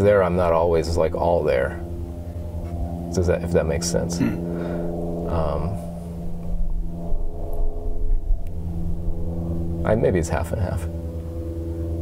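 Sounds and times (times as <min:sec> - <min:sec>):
guitar amplifier hum: 0:00.0 - 0:12.0
low rumble: 0:00.0 - 0:12.0.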